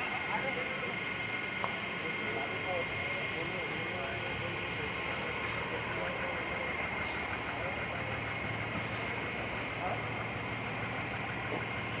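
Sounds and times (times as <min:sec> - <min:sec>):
fire truck engine idling: 0:00.0 - 0:12.0.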